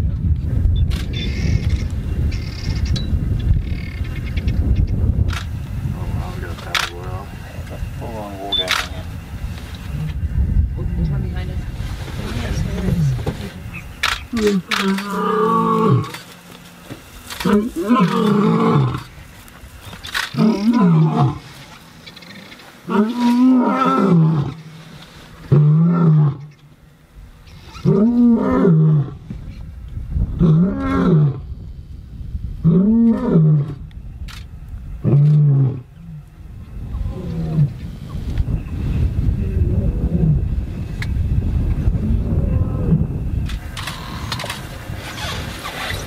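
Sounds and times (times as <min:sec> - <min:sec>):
lion roaring: 0:14.3 - 0:16.2, 0:17.4 - 0:19.1, 0:20.3 - 0:21.6, 0:22.2 - 0:24.7, 0:25.4 - 0:26.6, 0:27.7 - 0:29.2, 0:30.4 - 0:31.4, 0:32.6 - 0:33.8, 0:35.0 - 0:36.2, 0:36.9 - 0:37.8
lion growling: 0:17.4 - 0:19.1, 0:20.2 - 0:24.7, 0:36.9 - 0:37.8.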